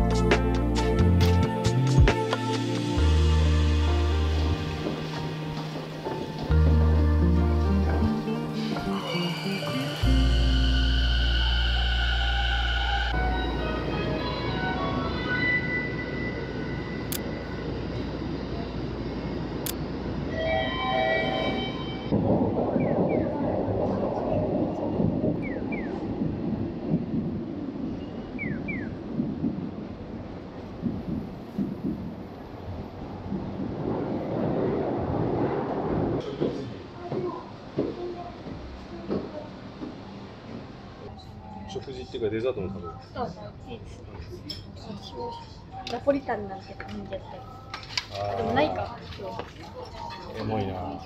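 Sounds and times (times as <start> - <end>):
subway train rushing: 2.2 - 42.8.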